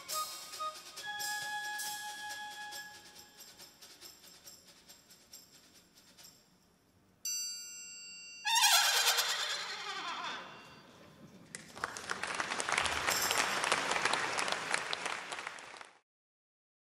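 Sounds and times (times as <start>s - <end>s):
audience applauding: 11.5s - 16.0s.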